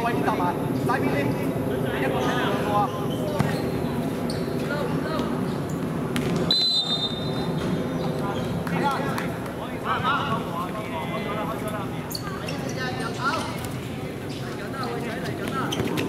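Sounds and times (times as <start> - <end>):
referee's whistle blast: 6.5 - 7.4.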